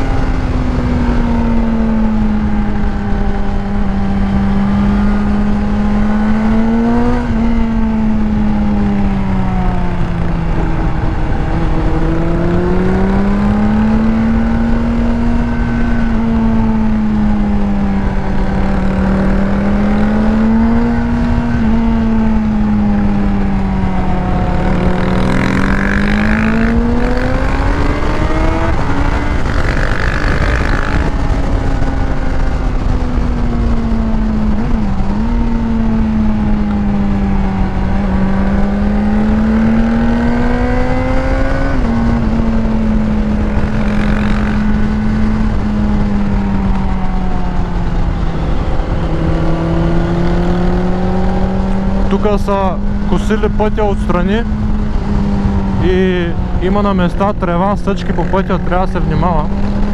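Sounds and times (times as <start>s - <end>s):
motorcycle engine running: 0.0s - 59.9s
wind noise: 0.0s - 59.9s.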